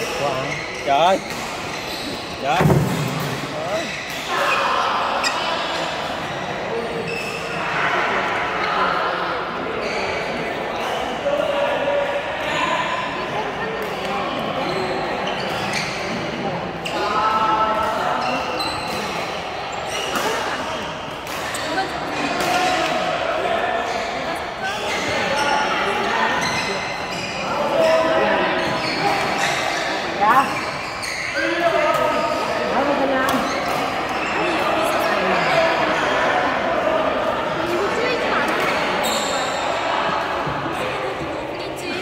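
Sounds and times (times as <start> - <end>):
shoe squeaks on court floor: 0.0 - 7.6, 9.8 - 10.4, 14.6 - 16.2, 18.1 - 19.2, 19.8 - 22.9, 23.9 - 25.7, 26.3 - 32.4, 33.3 - 34.6, 38.6 - 39.6
players' voices echoing: 0.0 - 42.0.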